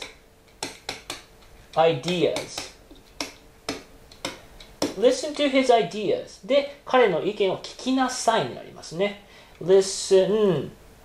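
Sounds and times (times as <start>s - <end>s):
marker tip tapping on board: 0.0s - 5.0s.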